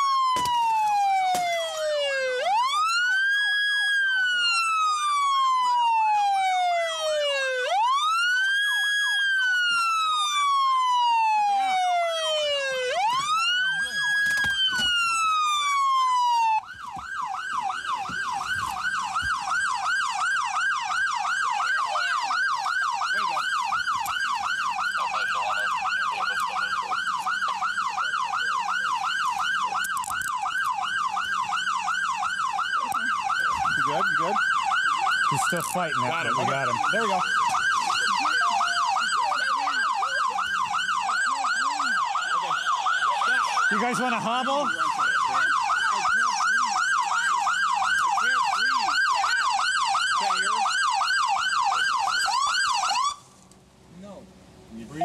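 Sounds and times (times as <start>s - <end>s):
police siren fast yelp: 0.0s - 53.3s
police siren wail: 0.0s - 53.4s.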